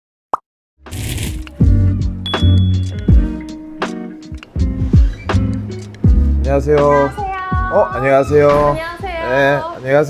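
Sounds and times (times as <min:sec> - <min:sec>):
intro jingle music: 0:02.3 - 0:03.6.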